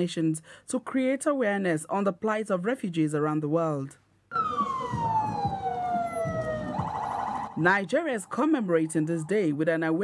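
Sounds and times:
low street noise: 4.3 - 10.0
siren wailing: 4.3 - 10.0
warbling siren: 4.3 - 10.0.

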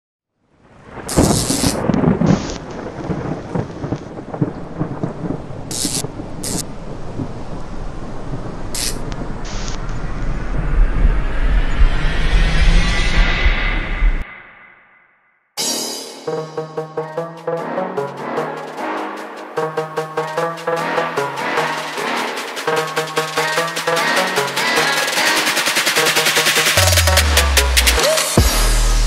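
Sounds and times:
rain: 0.5 - 11.4
rumbling thunder: 0.8 - 14.2
sharp thunder crack: 0.8 - 14.2.

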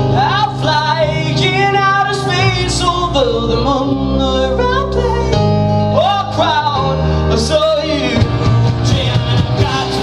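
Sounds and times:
live rock band playing: 0.0 - 10.0
man singing: 0.0 - 10.0.

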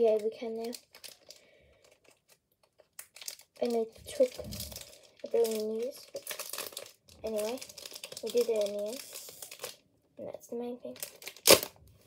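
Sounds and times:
wrapper crinkling: 0.0 - 9.8, 10.9 - 12.0.

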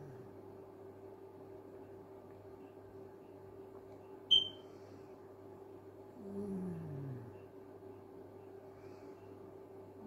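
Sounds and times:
steady low hum: 0.0 - 10.0
short high electronic beep: 4.3 - 4.6.

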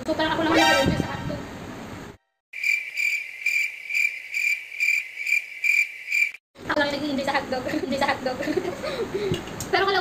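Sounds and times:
crickets chirping: 2.6 - 6.4.

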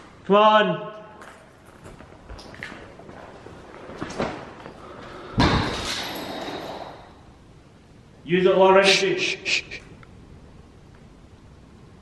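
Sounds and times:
loud bang echoing in empty room: 5.3 - 7.3.

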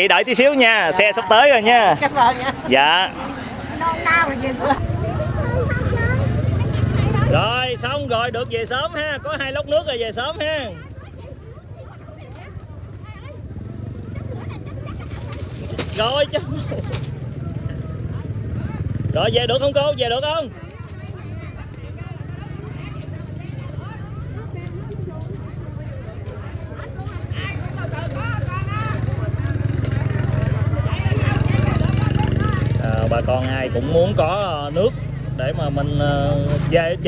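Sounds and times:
people talking: 0.0 - 10.0, 14.0 - 37.0
crowd chatter: 0.0 - 37.0
motorbike engine rumbling: 1.6 - 37.0.

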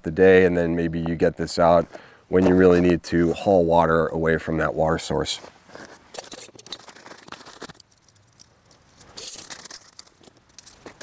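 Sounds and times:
gear rustling with small clicks: 5.8 - 11.0.

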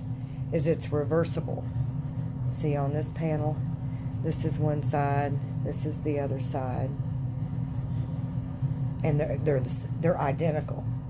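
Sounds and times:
faint constant tone: 0.0 - 11.0
low background hum and rumble: 0.0 - 11.0.

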